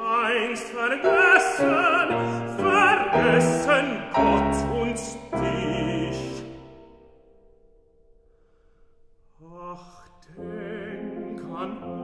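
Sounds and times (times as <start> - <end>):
man singing: 0.0 - 6.9, 9.4 - 12.0.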